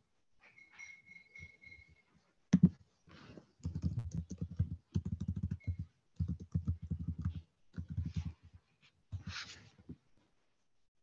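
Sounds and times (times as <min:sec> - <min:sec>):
computer keyboard typing: 0:03.6 - 0:08.3.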